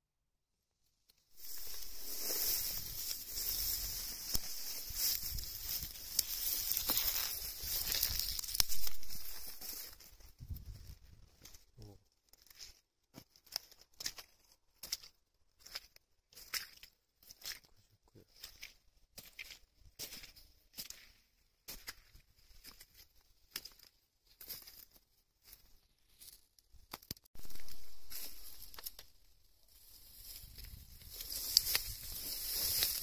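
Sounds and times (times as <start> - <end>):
rustling of dry vegetation: 1.2 - 17.7, 18.3 - 33.0
footsteps crunching through plants: 1.4 - 11.7, 12.4 - 26.5, 27.4 - 33.0.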